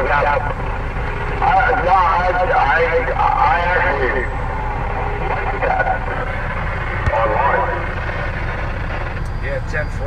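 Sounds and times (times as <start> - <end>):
road noise: 0.0 - 10.0
vehicle engine rumble: 0.0 - 10.0
indistinct speech: 1.4 - 4.3.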